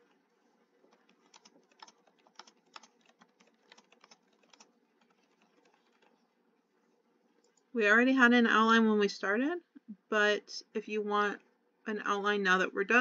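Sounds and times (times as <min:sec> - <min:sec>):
typing on computer keyboard: 0:00.9 - 0:06.2.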